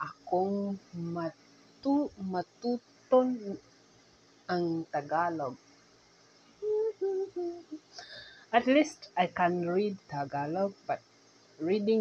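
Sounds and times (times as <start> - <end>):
woman humming: 1.9 - 3.6, 6.6 - 8.2.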